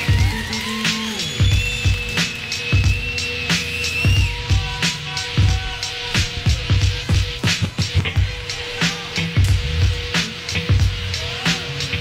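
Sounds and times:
band drum beat: 0.0s - 11.6s.

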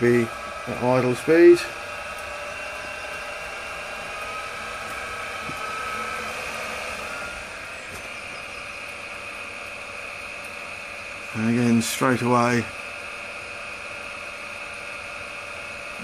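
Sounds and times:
ignition rotor whirring: 0.0s - 16.0s.

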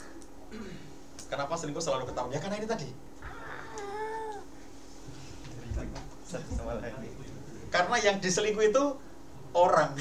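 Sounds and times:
high-pitched vocal call: 3.2s - 4.5s.

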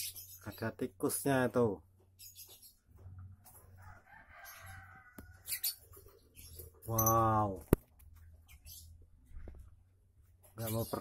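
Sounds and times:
rooster crowing: 3.8s - 5.7s.

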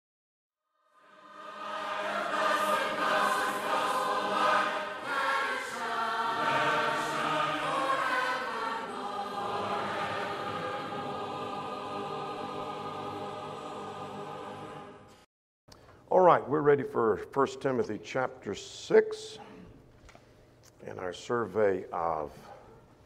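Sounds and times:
choir singing sustained chords: 0.8s - 15.3s.

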